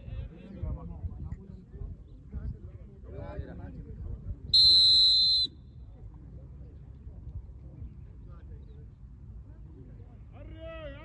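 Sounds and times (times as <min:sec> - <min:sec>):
referee's whistle blast: 0:04.6 - 0:05.5.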